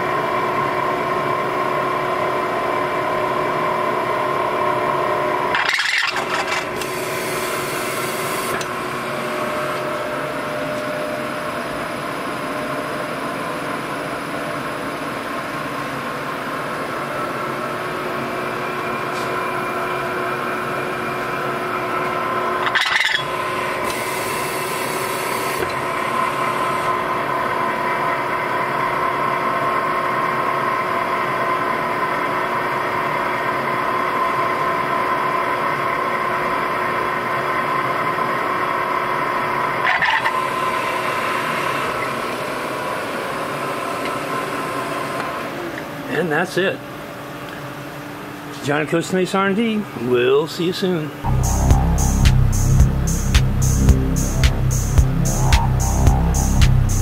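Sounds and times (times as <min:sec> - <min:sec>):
milling machine whine: 0:00.0 - 0:46.1, 0:51.2 - 0:57.0.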